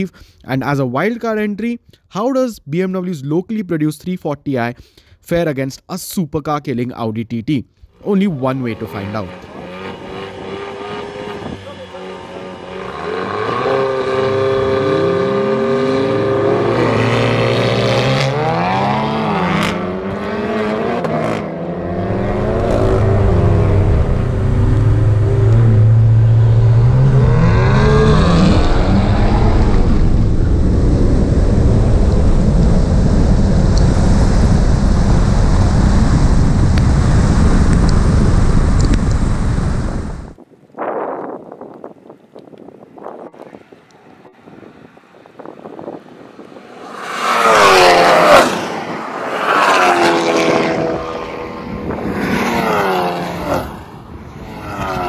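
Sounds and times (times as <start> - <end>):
rush of engine and wind noise: 7.9 - 55.0
car engines revving: 8.0 - 40.4, 43.2 - 55.0
engines accelerating through gears: 8.3 - 40.4, 44.4 - 55.0.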